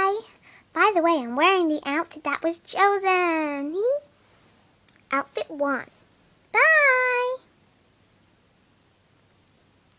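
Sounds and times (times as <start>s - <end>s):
child's high-pitched call: 6.6s - 7.5s.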